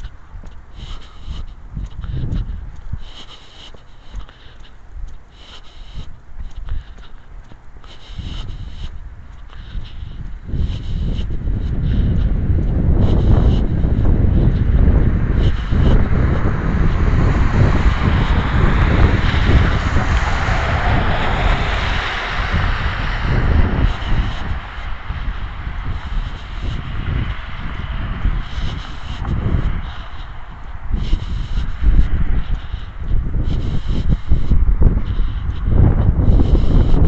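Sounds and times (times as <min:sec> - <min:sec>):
wind buffeting microphone: 0:00.0 - 0:37.0
car driving past: 0:16.4 - 0:28.2.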